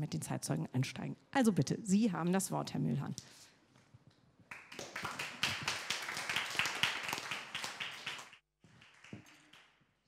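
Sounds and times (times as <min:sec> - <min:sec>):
audience applauding: 0:04.5 - 0:09.8.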